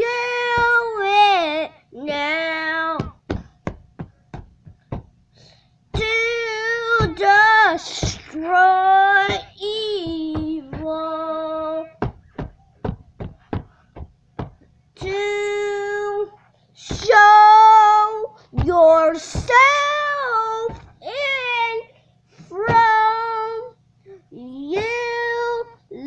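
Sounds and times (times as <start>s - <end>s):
child singing: 0.0s - 3.4s, 6.0s - 12.1s, 15.0s - 21.9s, 22.5s - 26.0s
sharp taps: 12.0s - 15.2s.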